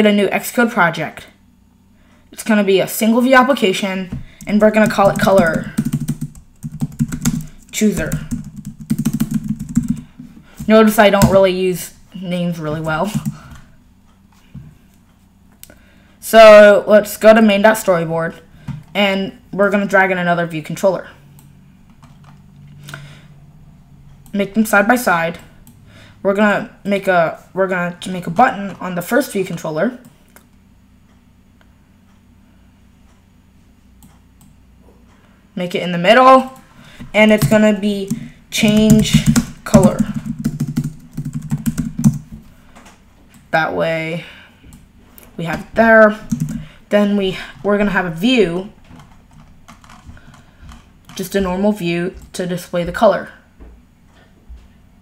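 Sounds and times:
low steady hum: 0.0s - 55.0s
computer mouse and keyboard clicks: 4.4s - 11.4s, 48.9s - 51.4s
computer clicks and taps: 4.4s - 11.6s, 37.2s - 42.4s, 46.3s - 46.7s.

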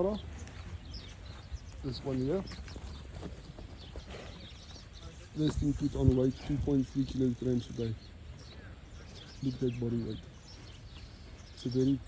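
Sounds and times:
hoof steps on dry dirt: 0.0s - 6.6s.

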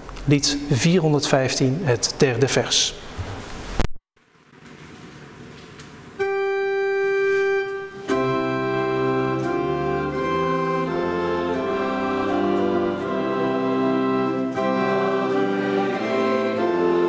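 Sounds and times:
church organ chords: 6.2s - 17.0s.

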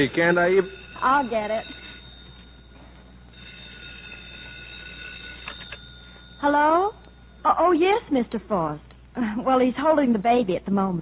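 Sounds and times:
telephone bell ringing: 0.0s - 8.2s.

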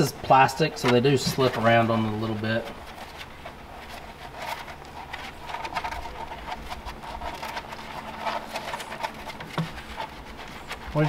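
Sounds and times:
paws scrabbling on plastic floor: 0.0s - 11.0s
puppies suckling: 0.1s - 11.0s.

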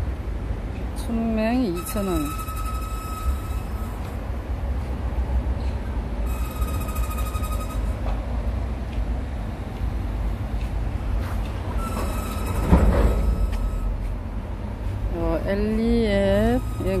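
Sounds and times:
train rumbling past: 0.0s - 17.0s
high squealing tones: 1.6s - 4.2s, 6.2s - 8.2s, 11.8s - 14.0s, 16.3s - 17.0s.

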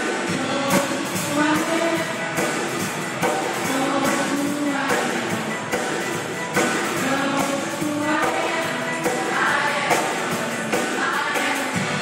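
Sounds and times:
choir singing in harmony: 3.2s - 12.0s.

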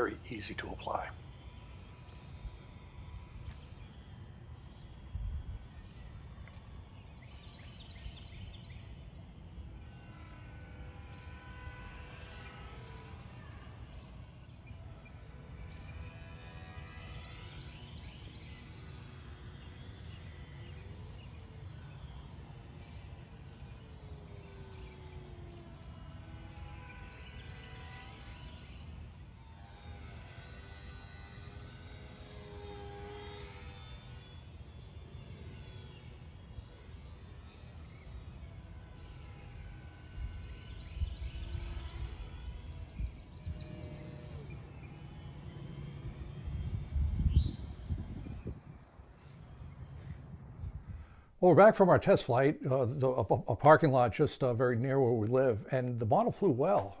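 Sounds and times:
model plane motor whining: 0.0s - 51.4s
wind rumble on microphone: 40.2s - 43.8s, 46.3s - 49.1s, 49.7s - 51.3s.

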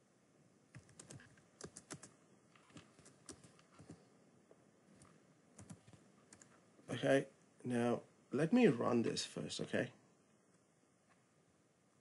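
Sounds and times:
typing on keyboard: 0.7s - 4.0s, 5.0s - 6.5s.

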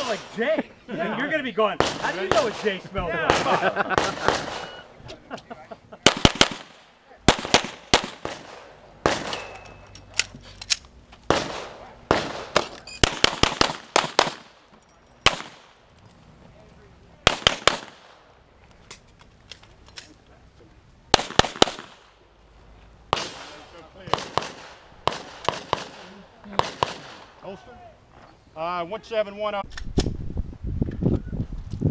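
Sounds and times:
pistol shots: 1.8s - 4.8s, 6.0s - 9.7s, 11.3s - 14.6s, 15.2s - 15.8s, 17.2s - 18.2s, 21.1s - 22.2s, 23.1s - 27.4s.

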